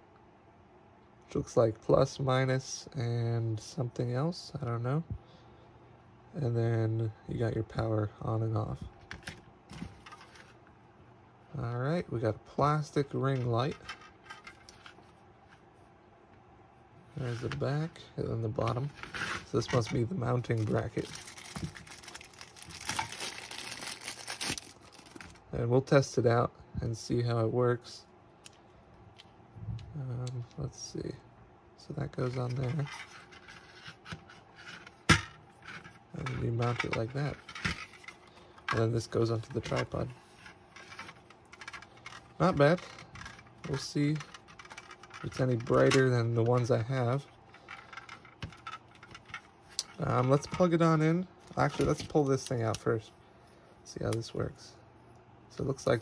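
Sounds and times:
plastic bag crinkling: 20.4s - 25.4s.

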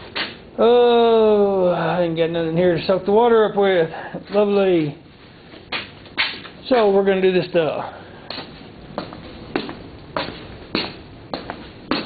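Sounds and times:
footsteps on concrete: 8.2s - 12.0s.

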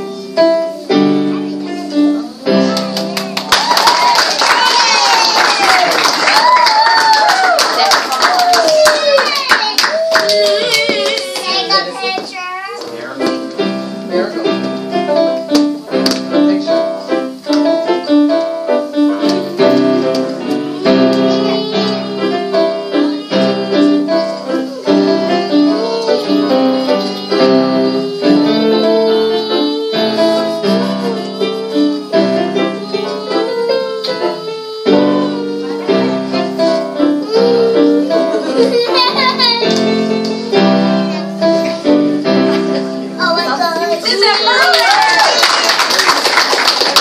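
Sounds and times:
electronic keyboards playing piano chords: 0.0s - 10.7s, 12.8s - 47.0s.

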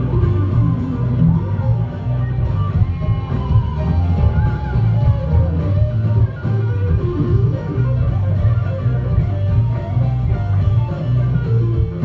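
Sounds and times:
bass line: 0.0s - 12.0s
drums: 0.0s - 12.0s
electric guitars: 0.0s - 12.0s.

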